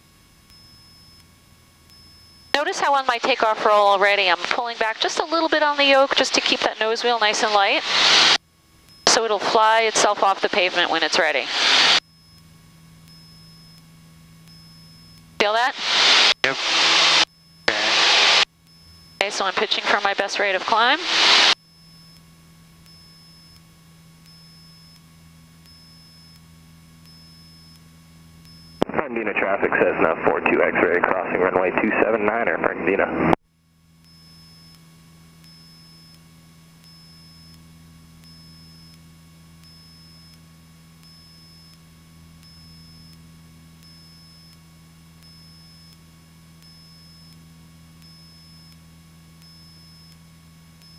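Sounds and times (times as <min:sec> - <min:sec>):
small airplane engine humming: 0:01.8 - 0:08.4, 0:14.4 - 0:22.0.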